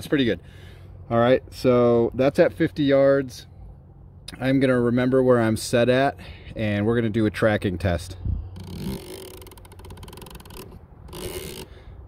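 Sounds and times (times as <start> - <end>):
riflescope turret fine clicks: 8.6 - 11.8.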